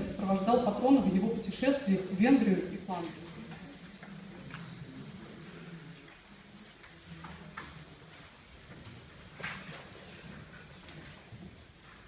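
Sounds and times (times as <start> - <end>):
low murmur of voices: 0.0 - 12.0.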